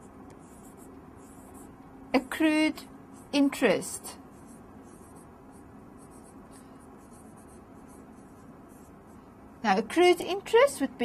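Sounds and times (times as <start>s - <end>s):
pen scratching on paper: 0.0s - 9.2s.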